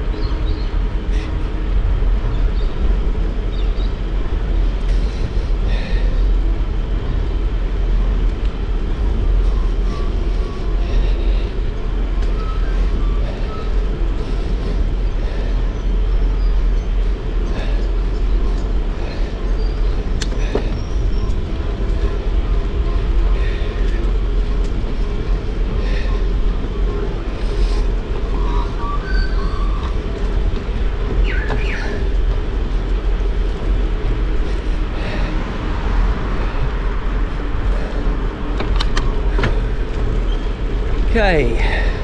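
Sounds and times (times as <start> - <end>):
wind rumble on microphone: 0.0 - 42.0.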